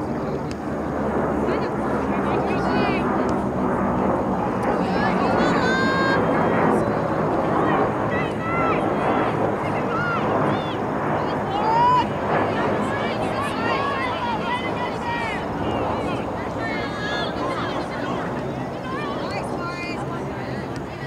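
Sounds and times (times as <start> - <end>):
people shouting short calls: 7.5 - 20.0.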